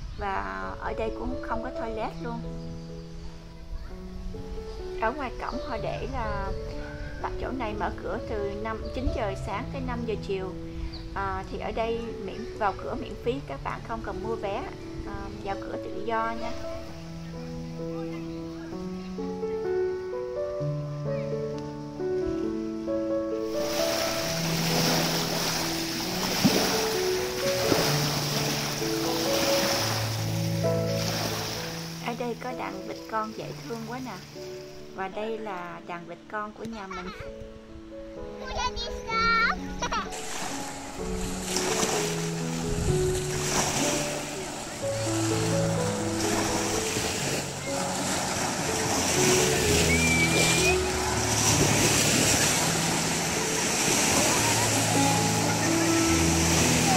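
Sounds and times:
background music with slow notes: 0.0s - 56.9s
waves washing on sandy shore: 23.5s - 34.2s, 40.1s - 56.9s
wind on microphone: 41.0s - 56.9s
rising whistle: 49.8s - 51.0s.

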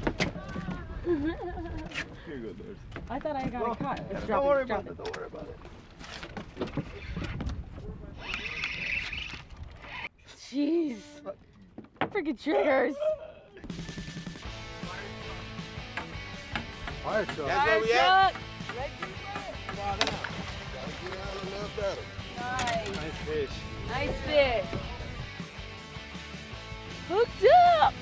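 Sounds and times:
fishing reel whirring: 8.2s - 10.1s
low wind rumble: 20.4s - 25.4s.

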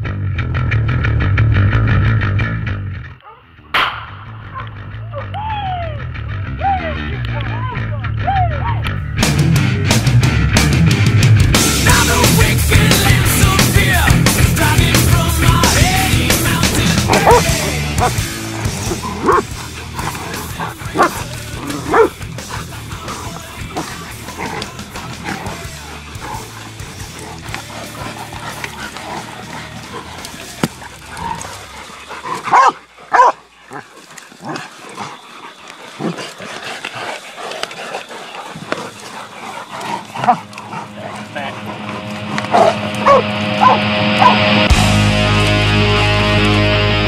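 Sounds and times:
loud rock music: 0.0s - 31.8s, 40.4s - 47.0s
dogs barking and yipping: 11.6s - 46.8s
wild hog crying out: 11.8s - 44.6s
scuffling: 12.0s - 45.6s.

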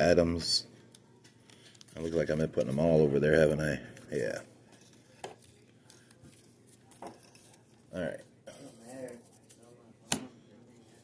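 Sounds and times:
handling trading cards: 0.6s - 10.0s.

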